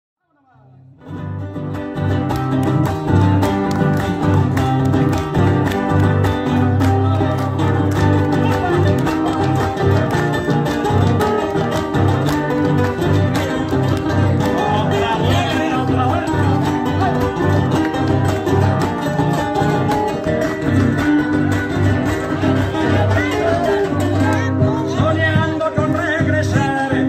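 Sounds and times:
strummed acoustic guitars: 0:01.0 - 0:27.0.

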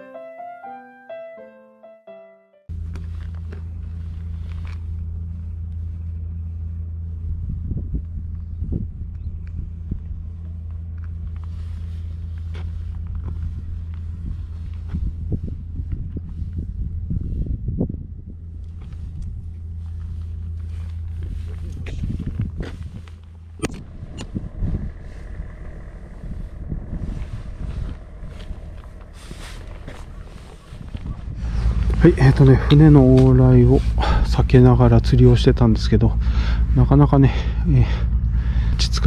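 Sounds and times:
boat engine droning: 0:00.0 - 0:39.0
wind rumbling on microphone: 0:03.1 - 0:39.0.

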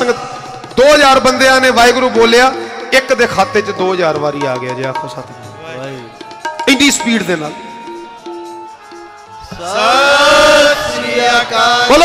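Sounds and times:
congregation chanting in unison: 0:09.5 - 0:12.0.

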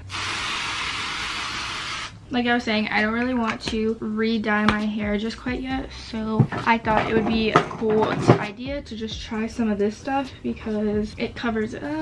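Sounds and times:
aerosol spray hissing: 0:00.0 - 0:02.1.

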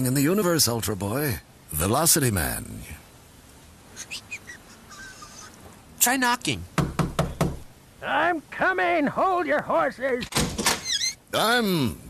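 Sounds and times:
faint background hiss: 0:00.0 - 0:12.0
high bird-like chirps: 0:03.9 - 0:05.6, 0:10.8 - 0:11.2.

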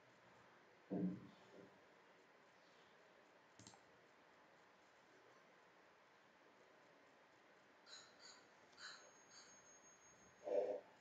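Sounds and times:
computer mouse click: 0:03.5 - 0:03.9.

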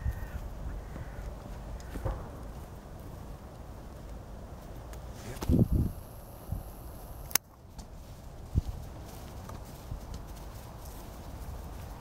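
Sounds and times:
wind rumble on microphone: 0:00.0 - 0:06.9, 0:07.9 - 0:12.0
footsteps on grass: 0:07.8 - 0:12.0.

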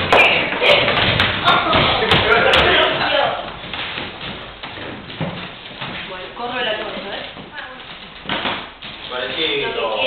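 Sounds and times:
shoes tapping on wooden floor: 0:00.0 - 0:09.4.

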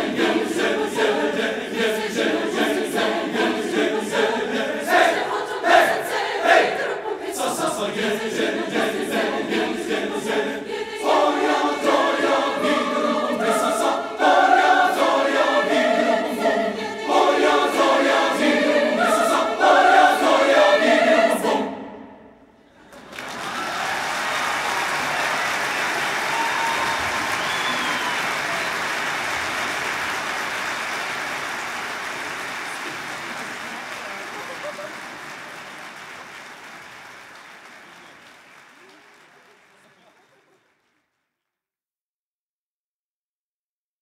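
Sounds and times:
choir singing: 0:00.0 - 0:35.4
audience applause: 0:22.8 - 0:41.1.

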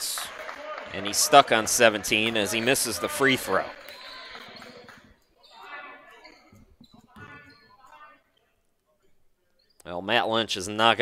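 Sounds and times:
basketball bouncing on hardwood floor: 0:06.2 - 0:07.7.

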